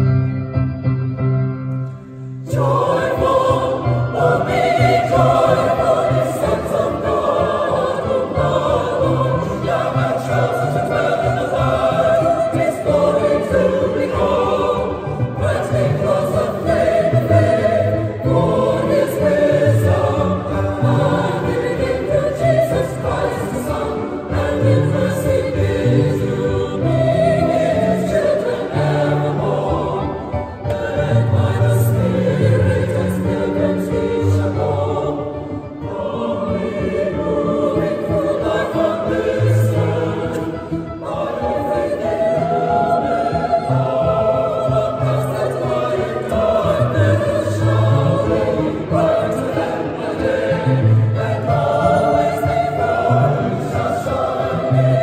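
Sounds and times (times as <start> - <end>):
mixed choir singing: 2.2 - 55.0.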